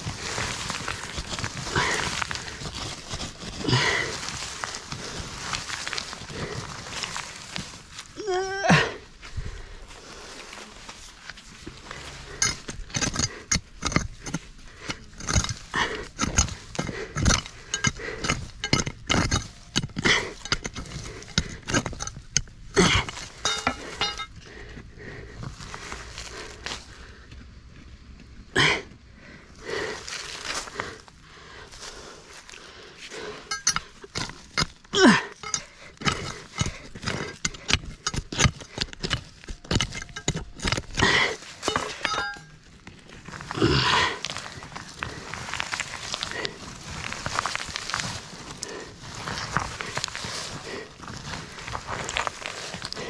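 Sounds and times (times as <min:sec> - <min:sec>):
metal bar scraping on rock: 0:12.0 - 0:24.4, 0:33.4 - 0:43.6.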